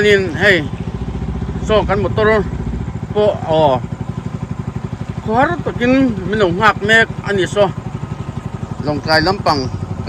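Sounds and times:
men talking: 0.0 - 4.2, 4.8 - 9.8
small boat engine putter: 0.0 - 10.0.

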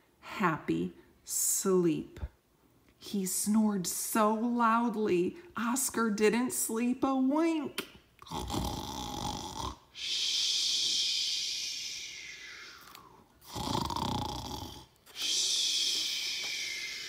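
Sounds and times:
person imitating loud snoring: 8.2 - 14.9.

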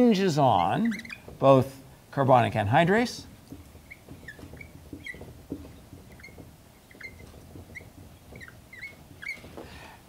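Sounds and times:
marker squeaking on whiteboard: 0.0 - 10.0.

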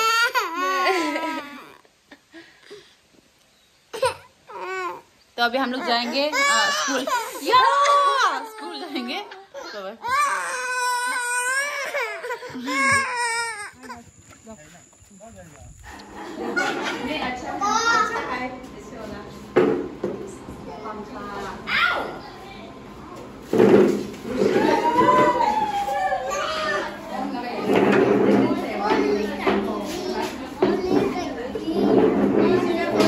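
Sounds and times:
children and adults talking: 4.5 - 33.0.

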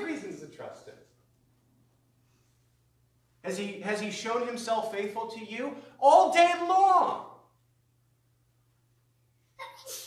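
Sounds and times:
man speaking: 0.0 - 1.2, 3.4 - 7.4
faint electrical hum: 0.0 - 10.0.

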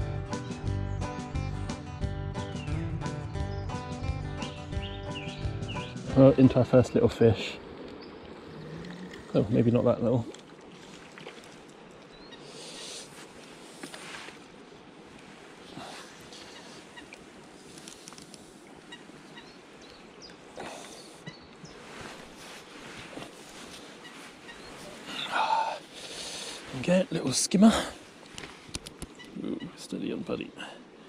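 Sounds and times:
rustles or splashes: 7.0 - 27.1
distant waterfowl calls: 10.3 - 26.7.

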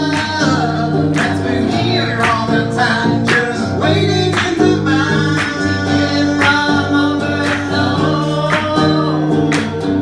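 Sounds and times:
acoustic guitar strumming: 0.0 - 10.0
voices singing together: 0.0 - 10.0.

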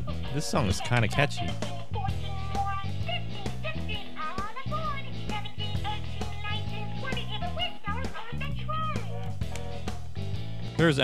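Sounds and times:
instrumental background music: 0.0 - 11.0
toy character voice singing: 0.1 - 9.8.

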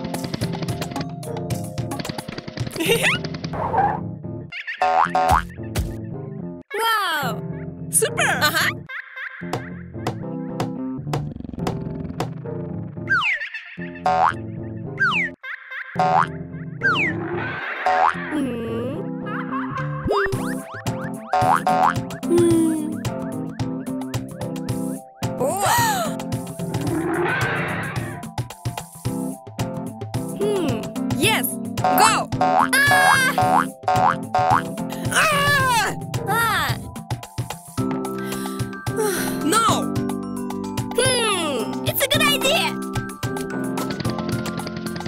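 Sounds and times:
playful cartoon music: 0.0 - 45.0.

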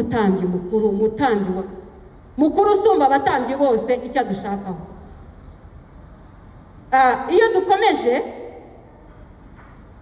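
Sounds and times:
faint hall background noise: 0.0 - 10.0.

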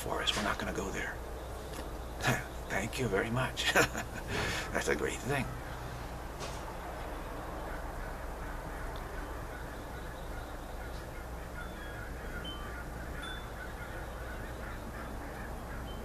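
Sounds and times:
birds chirping and calling: 0.0 - 16.0
steady low hum: 0.0 - 16.0.

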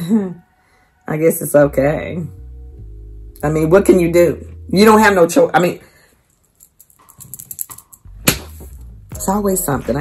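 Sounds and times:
low steady hum: 1.4 - 10.0
sharp knock: 8.2 - 8.8.

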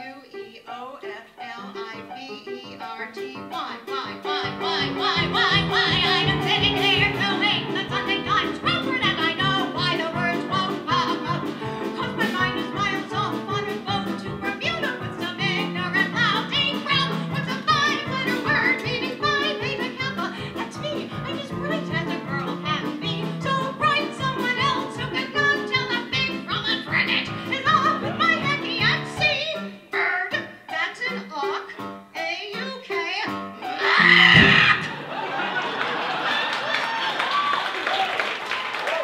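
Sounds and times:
woman singing with vibrato: 0.0 - 34.9
piano accompaniment: 0.0 - 35.5.

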